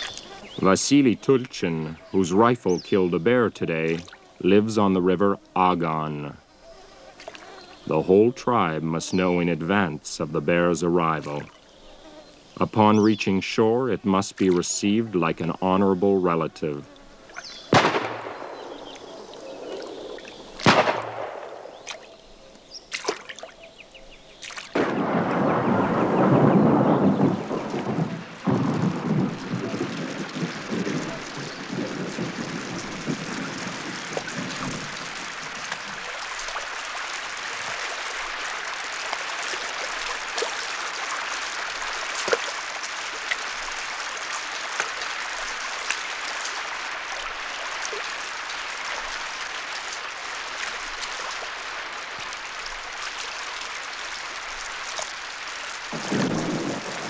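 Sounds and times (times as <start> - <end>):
steady rain: 0.0 - 57.0
thunder rolling: 17.7 - 21.8, 24.8 - 36.1, 55.9 - 57.0.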